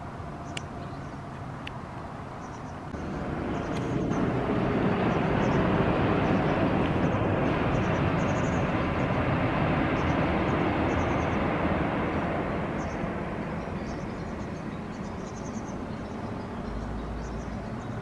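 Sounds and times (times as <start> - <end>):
passing vehicle rumble: 0.0 - 18.0
bird chirps: 13.6 - 18.0.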